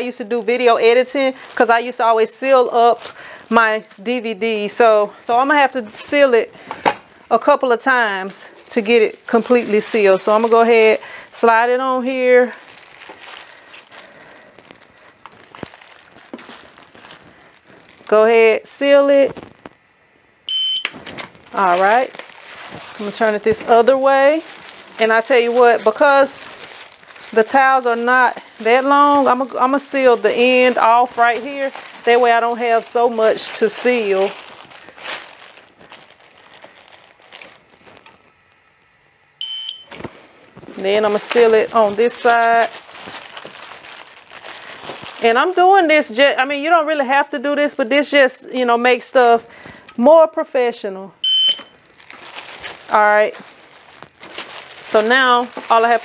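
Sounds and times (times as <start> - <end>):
plastic bag crinkling: 0.0 - 19.8, 20.8 - 38.7, 39.6 - 49.9, 51.2 - 56.0.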